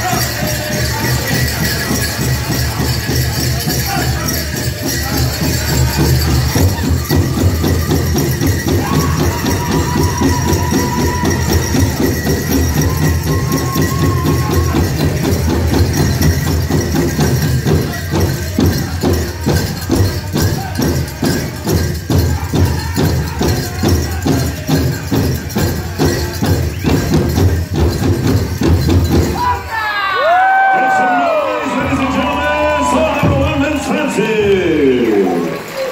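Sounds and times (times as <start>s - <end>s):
big drum beaten fast: 0.0s - 29.6s
jingling bells: 0.0s - 35.9s.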